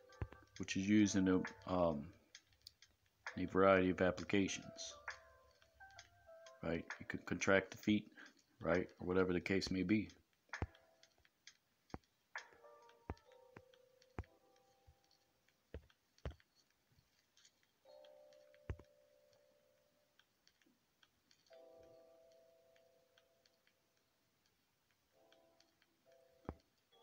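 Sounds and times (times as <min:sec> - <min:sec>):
fingers tapping touchscreen: 0:00.0 - 0:27.0.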